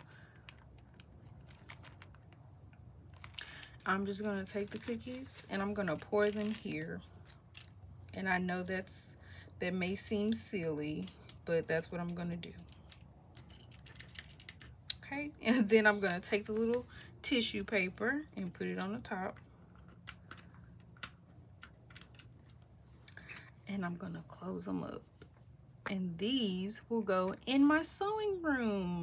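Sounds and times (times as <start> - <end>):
plastic bag crinkling: 3.0 - 5.5.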